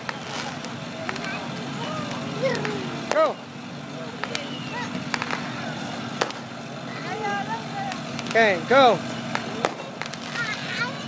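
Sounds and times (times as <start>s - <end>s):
children's voices: 0.0s - 11.0s
motorcycle close by: 0.0s - 11.0s
traffic engine hum: 0.0s - 11.0s.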